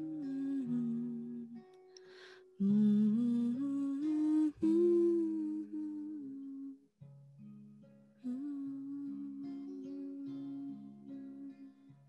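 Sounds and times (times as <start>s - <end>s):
woman humming: 0.0s - 6.8s, 8.2s - 11.8s
acoustic guitar: 0.0s - 12.0s.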